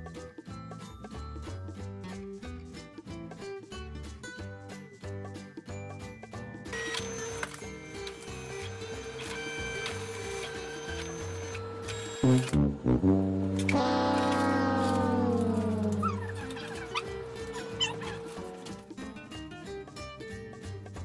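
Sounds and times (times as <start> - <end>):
background music: 0.0 - 21.0
comic descending sound effect: 12.4 - 18.5.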